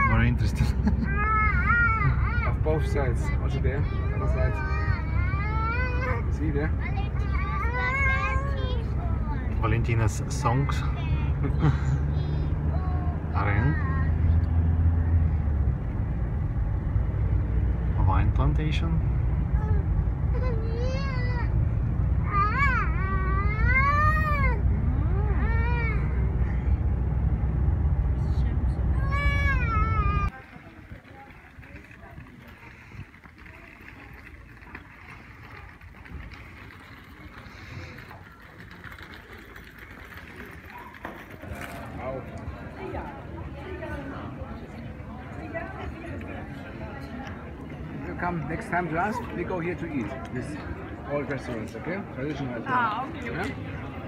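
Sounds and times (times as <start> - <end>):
car road noise rumble: 0.0 - 54.0.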